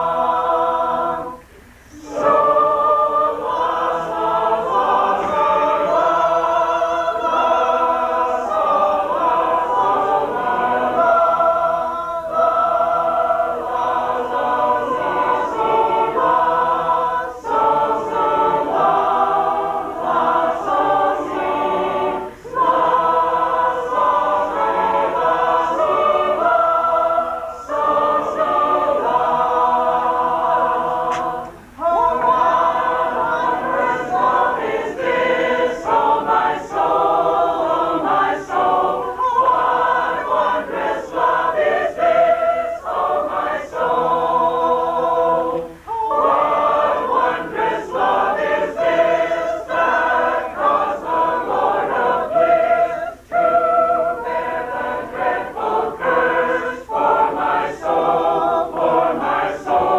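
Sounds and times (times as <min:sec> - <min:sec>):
mixed choir singing unaccompanied: 0:00.0 - 0:59.9.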